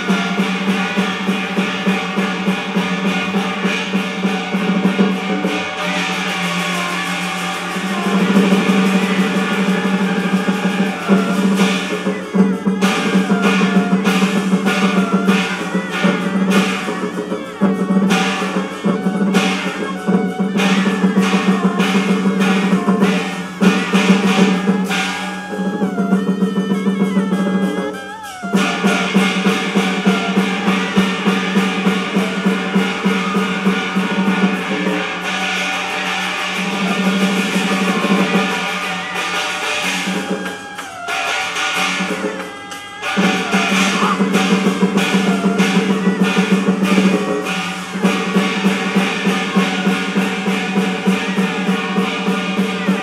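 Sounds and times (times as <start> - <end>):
rapid percussion strokes: 0.0 - 53.0
sustained low melodic instruments: 0.0 - 53.0.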